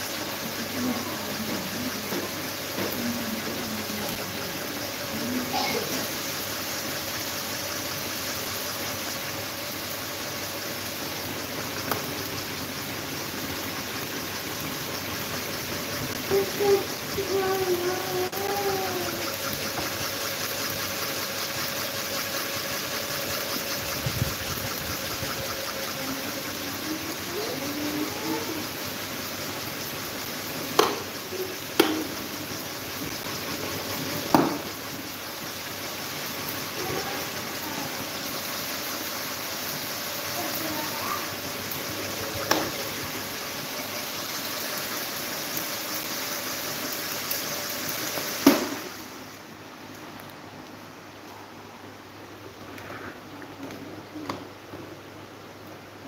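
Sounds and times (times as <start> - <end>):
electric fans running: 0.0 - 56.0.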